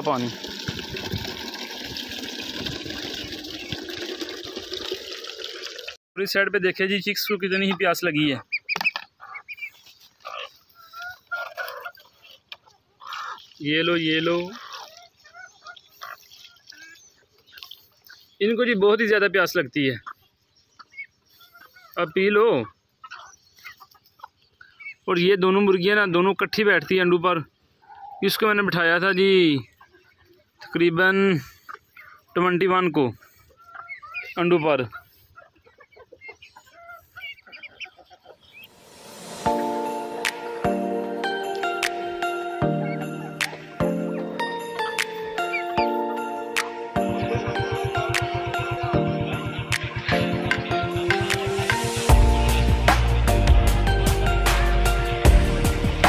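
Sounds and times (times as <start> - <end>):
hens clucking: 7.2 - 18.3, 26.6 - 52.1
poultry calling: 7.2 - 18.3, 19.9 - 25.0, 27.7 - 52.2
chicks peeping: 7.2 - 18.6, 19.8 - 26.0, 26.6 - 52.6.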